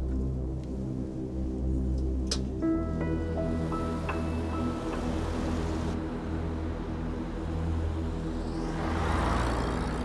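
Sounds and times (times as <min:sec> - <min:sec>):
car passing by: 0:08.0 - 0:10.0.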